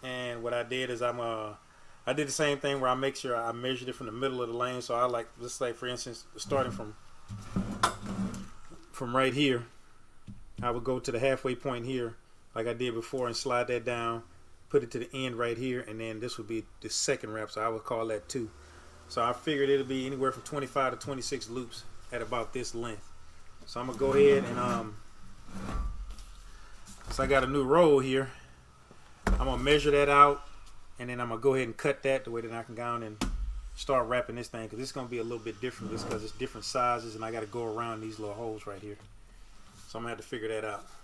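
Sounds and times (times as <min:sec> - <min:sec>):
handling noise on workbench: 0:06.6 - 0:08.6.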